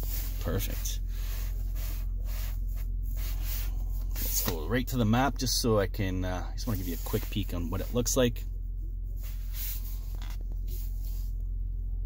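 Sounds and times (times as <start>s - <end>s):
car cabin engine hum: 0.0s - 12.0s.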